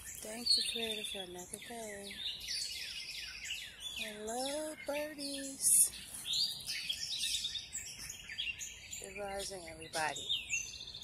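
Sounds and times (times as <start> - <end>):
bird trill: 0.0 - 11.0
songbirds chirping: 0.0 - 11.0.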